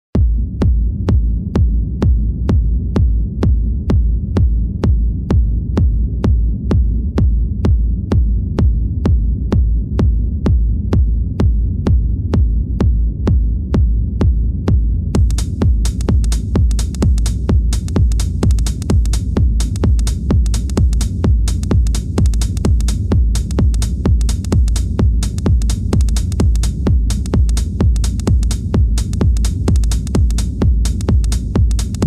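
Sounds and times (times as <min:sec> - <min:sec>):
deep throbbing bass drone: 0:00.2 - 0:32.0
hissing hi-hat: 0:15.2 - 0:32.0
sharp click on every beat: 0:15.2 - 0:32.0.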